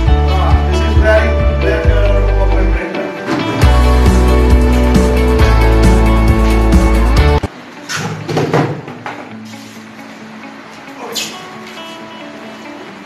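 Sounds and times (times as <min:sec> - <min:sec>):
background music: 0:00.0 - 0:07.5.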